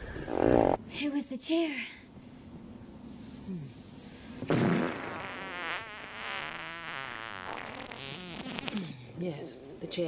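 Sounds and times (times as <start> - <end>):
long wavering fart noise: 0.1 - 0.8, 4.5 - 8.8.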